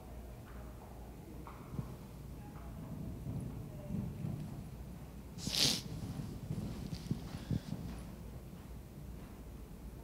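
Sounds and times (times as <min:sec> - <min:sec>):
horse hoofbeats on sand: 0:01.4 - 0:10.0.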